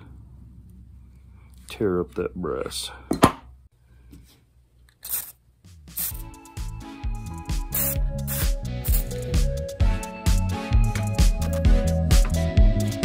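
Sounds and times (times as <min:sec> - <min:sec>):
aerosol can spraying: 0:05.0 - 0:06.4, 0:07.4 - 0:09.4
background music with steady beat: 0:05.6 - 0:13.0.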